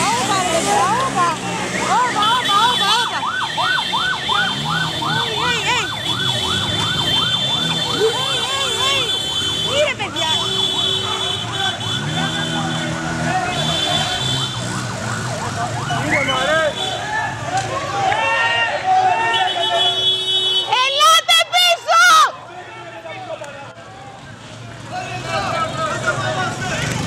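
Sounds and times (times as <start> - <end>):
motorcycle engines: 0.0 - 27.0
motorcycle siren yelping: 1.7 - 17.5
people shouting: 1.8 - 6.0, 7.5 - 14.5, 15.9 - 24.1.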